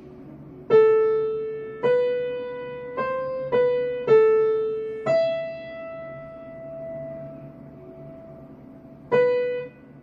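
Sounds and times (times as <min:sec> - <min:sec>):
held piano note: 0:00.0 - 0:10.0.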